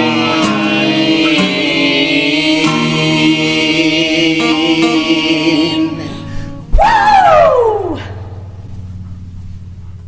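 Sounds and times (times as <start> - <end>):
acoustic guitar chord ringing: 0.0 - 10.0
vocal whoop sliding down: 6.7 - 8.2.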